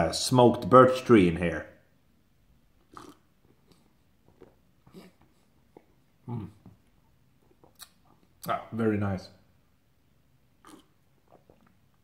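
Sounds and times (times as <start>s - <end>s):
lip smacks and mouth clicks: 2.8s - 6.0s, 6.6s - 8.6s
person humming mm: 6.2s - 6.7s.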